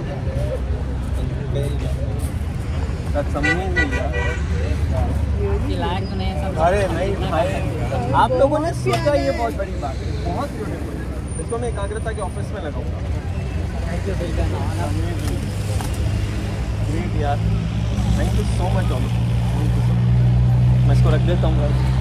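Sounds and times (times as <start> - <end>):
people talking quietly: 0.0 - 22.0.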